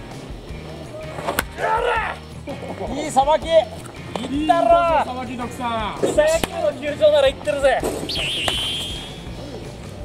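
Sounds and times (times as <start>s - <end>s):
wooden bat hitting ball: 1.3s - 1.6s, 7.8s - 9.1s.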